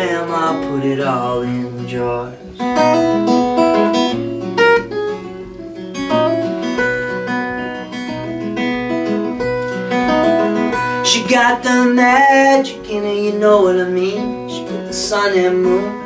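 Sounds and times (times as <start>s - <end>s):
acoustic guitar picked and strummed: 0.0s - 16.0s.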